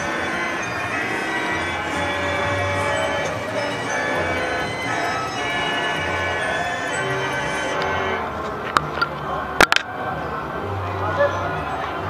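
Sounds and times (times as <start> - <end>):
bell-like chimes: 0.0 - 8.2
fairground organ music: 0.0 - 12.0.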